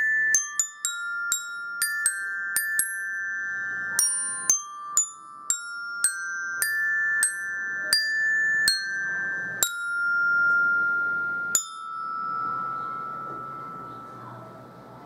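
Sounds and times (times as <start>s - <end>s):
metallophone slow melody: 0.0s - 15.0s.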